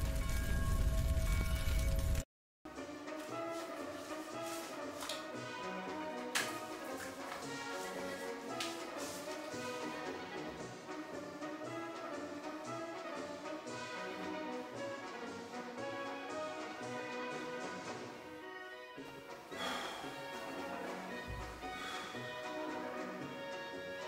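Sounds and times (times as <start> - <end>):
instrumental music with brass: 2.7 - 24.0.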